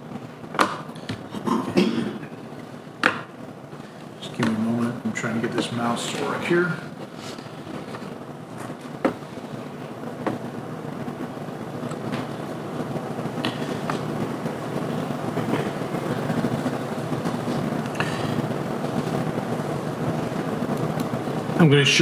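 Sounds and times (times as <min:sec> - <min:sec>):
low room rumble: 0:00.0 - 0:22.0.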